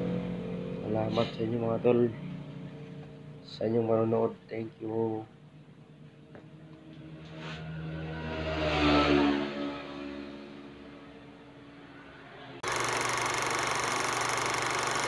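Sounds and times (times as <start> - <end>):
vehicle engine passing: 5.4 - 12.6
loud steady noise: 12.6 - 15.0.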